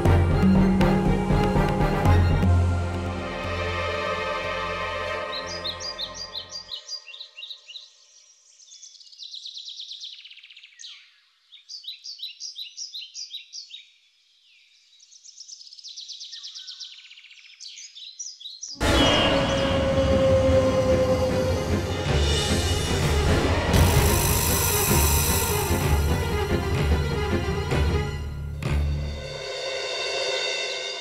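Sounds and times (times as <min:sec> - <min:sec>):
loud dramatic music: 0:00.0 - 0:06.6, 0:18.8 - 0:31.0
birds chirping and trilling: 0:05.0 - 0:25.8.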